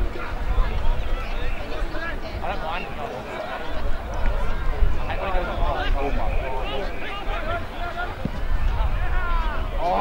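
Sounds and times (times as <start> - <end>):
wind rumble on microphone: 0.0 - 2.4, 3.7 - 7.5, 8.2 - 10.0
people calling and shouting: 0.0 - 10.0.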